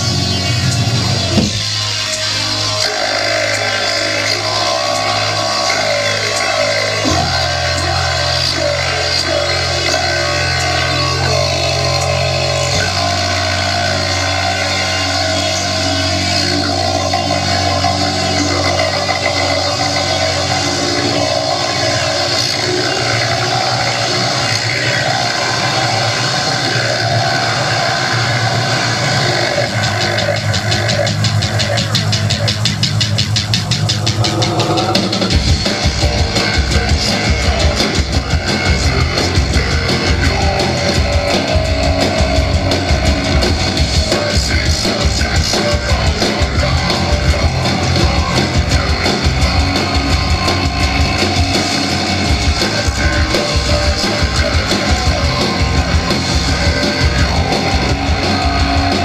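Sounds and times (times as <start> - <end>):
live rock band playing: 0.0 - 59.0
low bass notes: 0.0 - 59.0
fast pulsing beat: 28.8 - 59.0.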